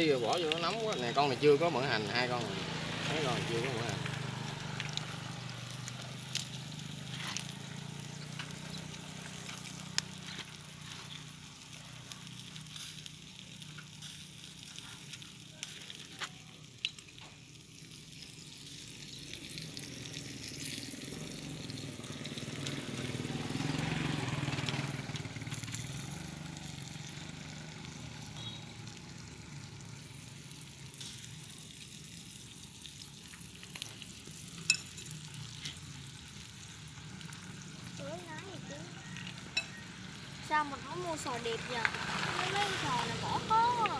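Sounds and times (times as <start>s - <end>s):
shellfish sizzling on a grill: 0.0s - 43.9s.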